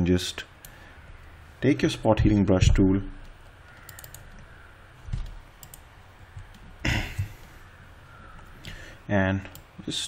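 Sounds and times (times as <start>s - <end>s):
mouse and keyboard clicks: 3.2s - 5.8s.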